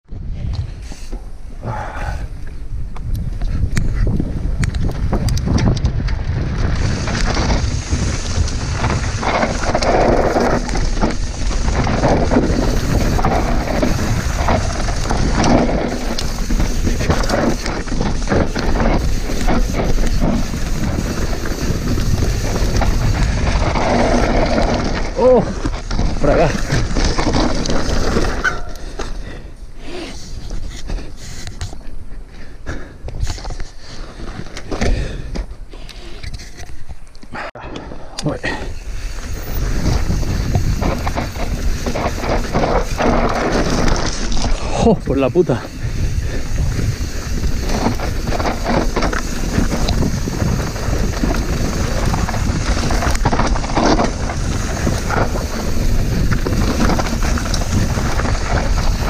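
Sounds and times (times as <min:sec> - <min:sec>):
wind rush on microphone: 0:00.0 - 0:59.0
bike tyres and drivetrain rattling: 0:00.2 - 0:59.0.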